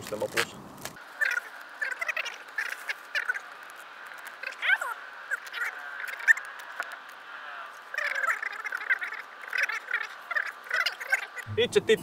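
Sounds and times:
sped-up squeaky chatter: 0:01.2 - 0:03.6.

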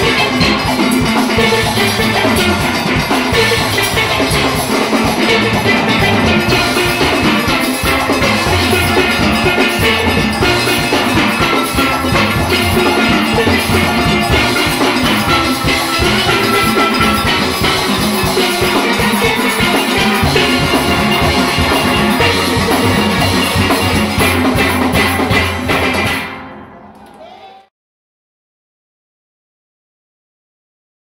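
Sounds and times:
steelpans playing fast tune: 0:00.0 - 0:26.4
drum and percussion rhythm: 0:00.0 - 0:26.6.

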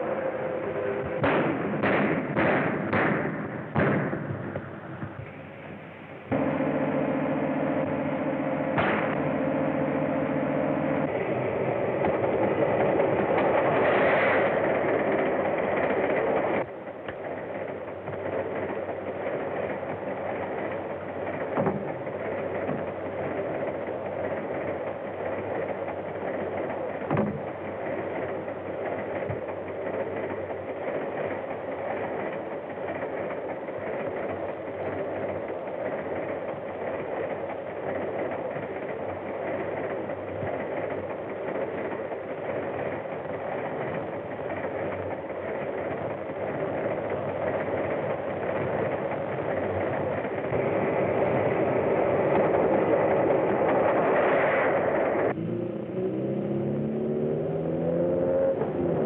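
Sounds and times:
train rushing rumble: 0:00.0 - 0:59.0
car engine changing pitch: 0:05.2 - 0:14.6, 0:50.5 - 0:59.0.

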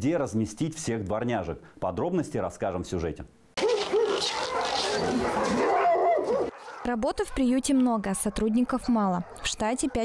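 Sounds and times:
dogs barking and whining: 0:03.6 - 0:10.0.

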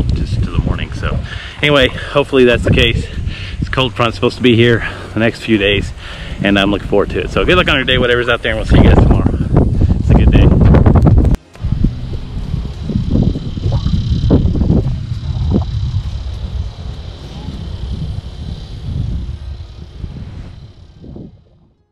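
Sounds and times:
faint high hum: 0:00.0 - 0:10.6, 0:11.4 - 0:21.9
wind buffeting microphone: 0:00.0 - 0:21.9.

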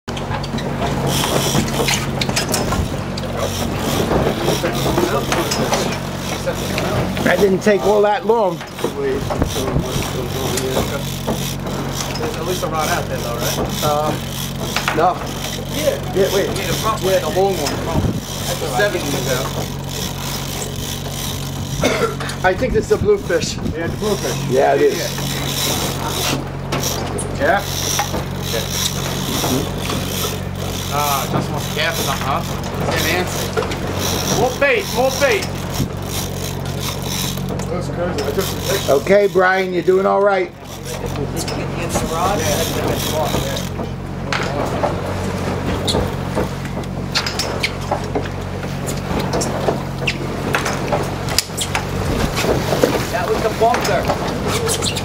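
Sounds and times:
boat engine humming: 0:00.0 - 0:55.0
wind and sea noise: 0:00.1 - 0:55.0.

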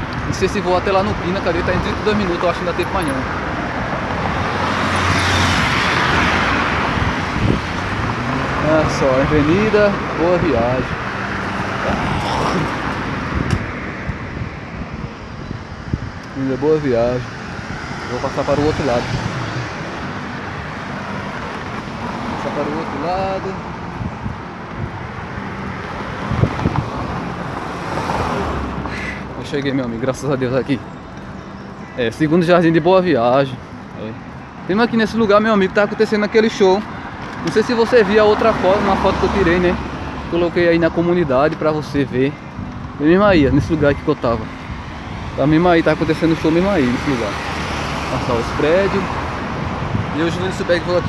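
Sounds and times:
cars passing: 0:00.0 - 0:51.0
road traffic: 0:00.0 - 0:51.0.

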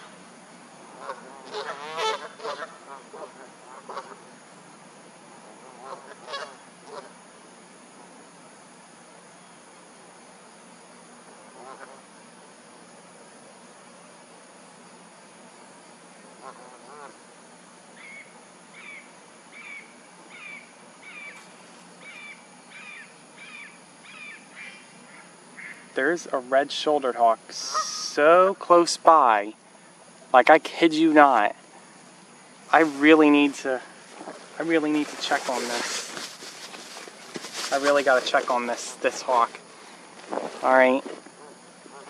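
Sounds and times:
hawk screaming calls: 0:01.0 - 0:04.2, 0:05.8 - 0:07.1, 0:18.0 - 0:21.4, 0:22.0 - 0:25.8, 0:27.6 - 0:28.2.

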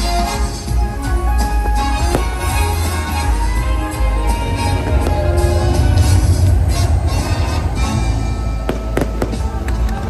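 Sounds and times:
loud music with heavy bass: 0:00.0 - 0:09.7
fireworks bangs: 0:02.0 - 0:02.9, 0:08.6 - 0:09.7.

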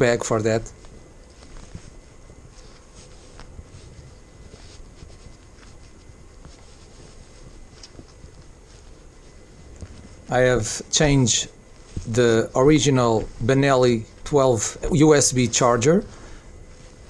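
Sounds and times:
riding gear rustling: 0:00.0 - 0:17.0.

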